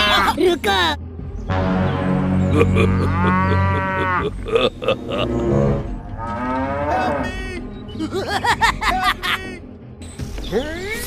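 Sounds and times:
cow mooing: 1.5s - 4.6s, 5.2s - 7.3s.

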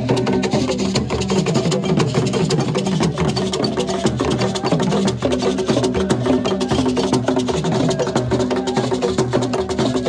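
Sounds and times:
rapid drumming and percussion: 0.0s - 10.0s.

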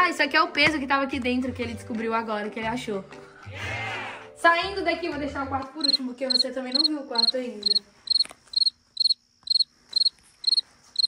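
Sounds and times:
cricket chirping: 5.7s - 11.0s.

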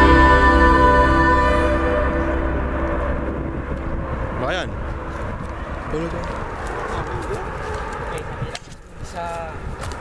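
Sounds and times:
music track: 0.0s - 7.0s
low outdoor rumble: 0.0s - 8.5s.

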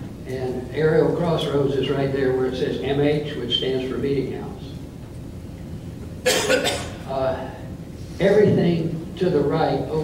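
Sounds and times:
person coughing: 6.2s - 7.1s.

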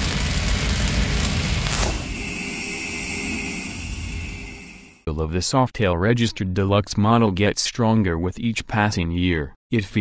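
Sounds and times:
drone with high tone: 0.5s - 5.1s
downward whoosh: 0.9s - 5.0s.

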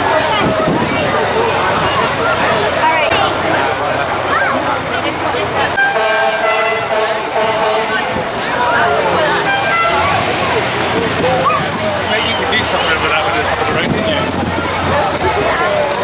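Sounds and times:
crowd chatter: 0.0s - 16.0s
vehicle horn tooting: 5.8s - 8.2s, 9.3s - 10.2s.

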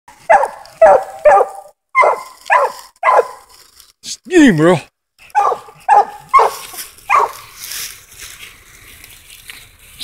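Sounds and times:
dog barking: 0.2s - 3.5s, 5.3s - 7.5s.

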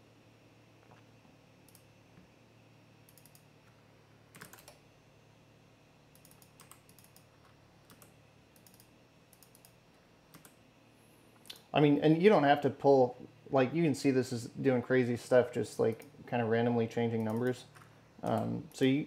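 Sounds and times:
keyboard typing and clicking: 4.3s - 4.8s, 6.2s - 7.3s, 7.9s - 10.6s, 17.2s - 18.5s.

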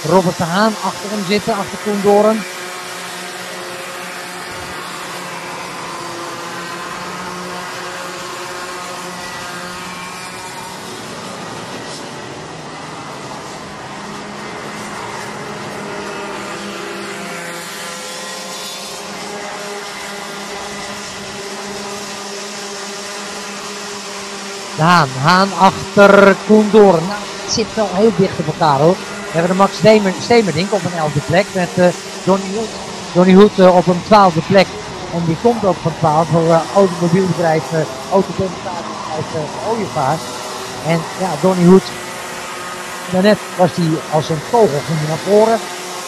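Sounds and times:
racing kart engines: 0.0s - 46.0s.

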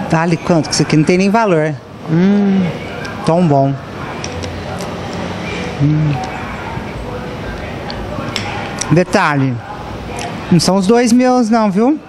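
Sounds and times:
cafe room noise: 0.0s - 12.0s.

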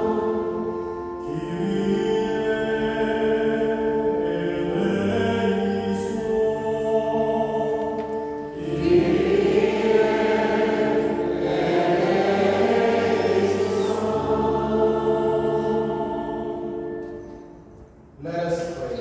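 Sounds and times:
choir singing sacred music: 0.0s - 17.9s.

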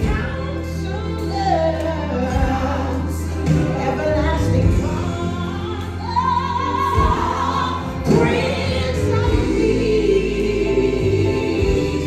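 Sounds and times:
band with held bass line: 0.0s - 12.0s
gospel singing voices: 0.0s - 12.0s.

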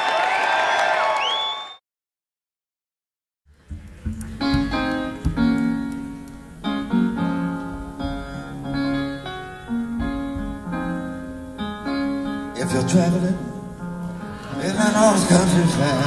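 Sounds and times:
piano chords and notes: 3.5s - 16.0s.

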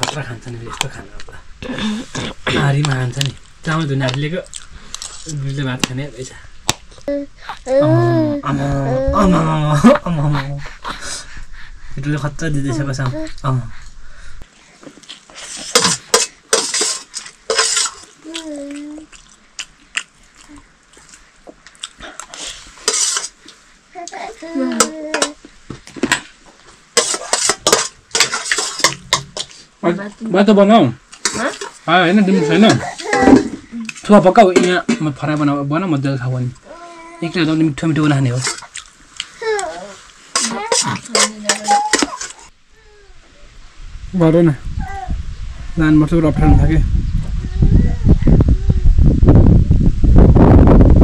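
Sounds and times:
voices talking: 5.1s - 11.3s
metal spoon scraping a plate: 15.5s - 18.1s, 22.8s - 23.4s, 27.0s - 29.6s, 40.3s - 42.5s.

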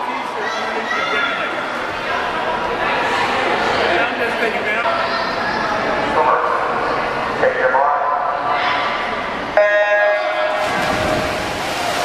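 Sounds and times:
echoing crowd noise: 0.0s - 12.0s.

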